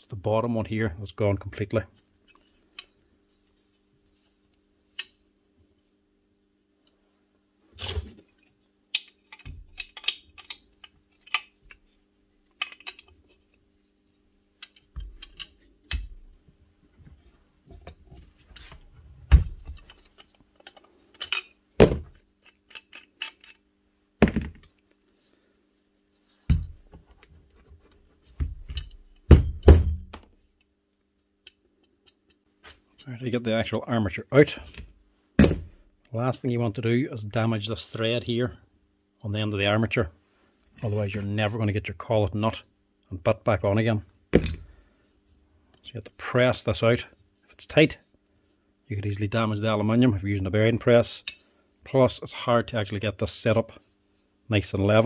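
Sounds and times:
metal parts clicking and knocking: 8.9 - 11.8, 12.6 - 13.4, 14.6 - 16.3, 19.5 - 23.6, 34.7 - 35.8.

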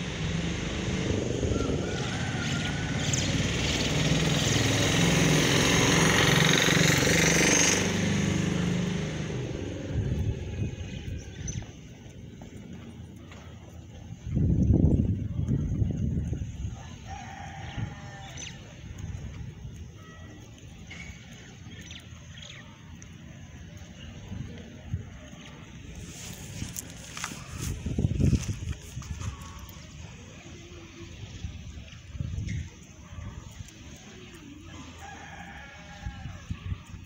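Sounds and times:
low rumble: 0.0 - 4.1
rooster crowing: 1.3 - 3.6, 16.7 - 18.6, 34.7 - 36.7.

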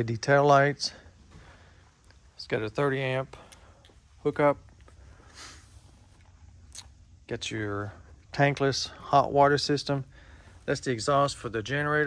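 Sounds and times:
low steady hum: 0.0 - 12.0
soft hiss: 0.0 - 12.0.

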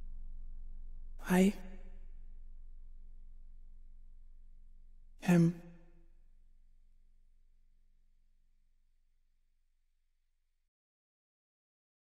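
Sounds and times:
faint low hum: 0.0 - 9.2.

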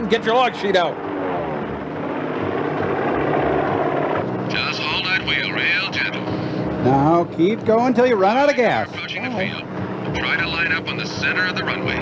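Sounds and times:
propeller aircraft engine droning: 0.0 - 12.0.

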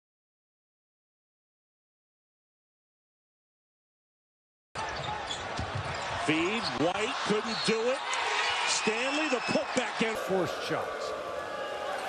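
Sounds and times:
crowd noise: 4.8 - 12.0
man talking: 6.2 - 8.1, 8.7 - 11.1.

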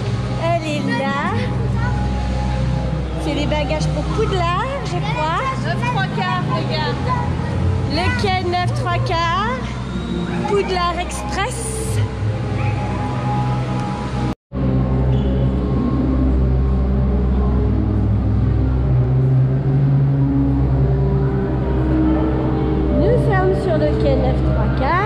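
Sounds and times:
music with sustained low notes: 0.0 - 25.0.

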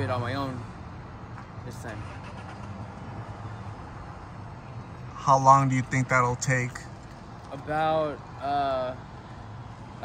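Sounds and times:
low hum of street traffic: 0.0 - 10.0.

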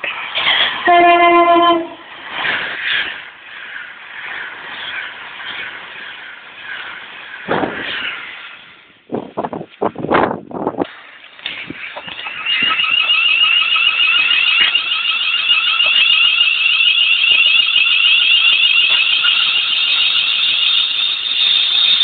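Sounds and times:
electric train passing: 0.0 - 9.2, 10.8 - 22.0
high-pitched warbling squeal: 11.5 - 22.0.

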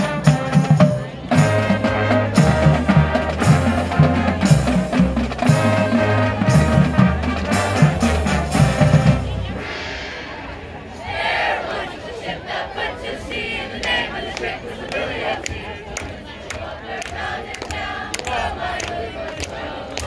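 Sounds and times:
marching band playing: 0.0 - 12.2.

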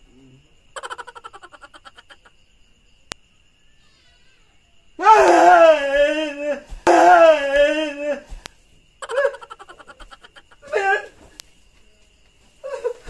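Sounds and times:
person wailing: 5.0 - 8.4, 10.6 - 11.1.

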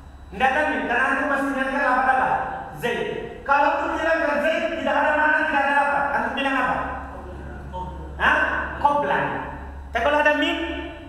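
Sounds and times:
steady low hum: 0.0 - 11.0
man speaking: 0.3 - 11.0.

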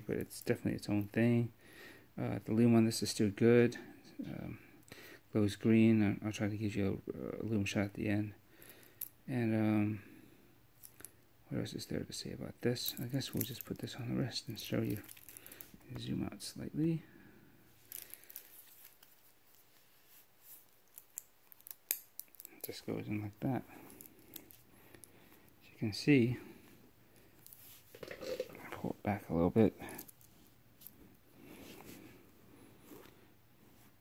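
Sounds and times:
wristwatch strap clicks and rustles: 14.6 - 15.7, 17.8 - 19.7, 20.4 - 22.7.

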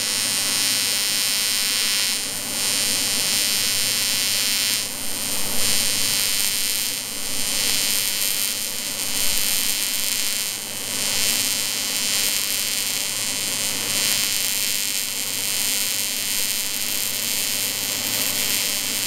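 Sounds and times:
welding arc buzzing: 0.0 - 19.0.

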